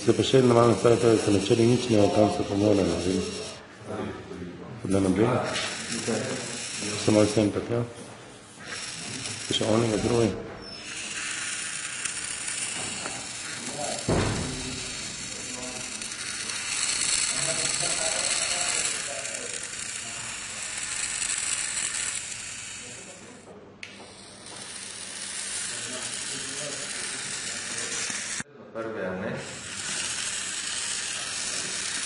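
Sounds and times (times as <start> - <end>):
small motors whirring: 0.0 - 3.6, 4.9 - 28.4, 29.3 - 32.0.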